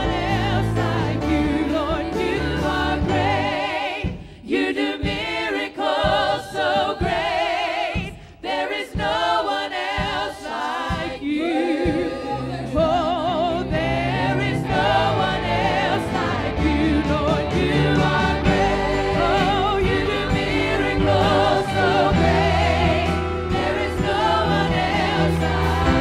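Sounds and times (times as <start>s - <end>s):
worship team singing: 0.0s - 26.0s
instrumental accompaniment: 11.8s - 26.0s.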